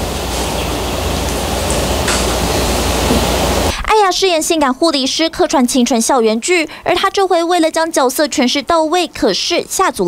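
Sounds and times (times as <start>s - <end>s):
steady hiss: 0.0s - 3.7s.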